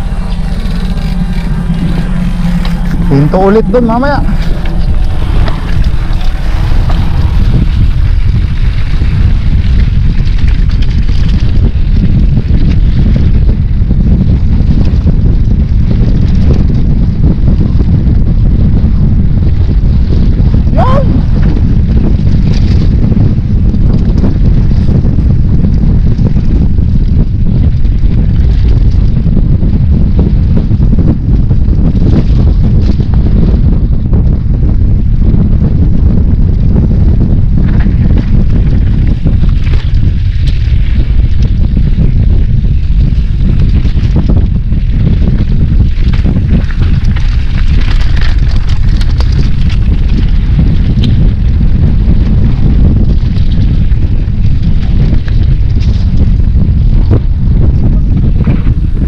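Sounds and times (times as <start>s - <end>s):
bike clicks and rattles: 0.0s - 59.0s
wind buffeting microphone: 0.0s - 59.0s.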